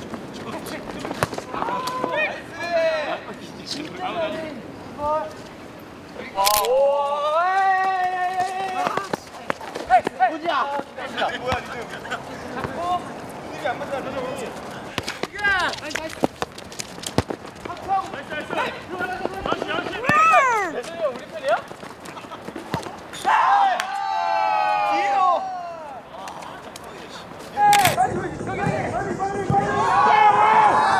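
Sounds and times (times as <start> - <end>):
ball being kicked: 14.9 - 17.8, 19.4 - 20.4
young men shouting: 18.4 - 21.2, 23.2 - 26.1.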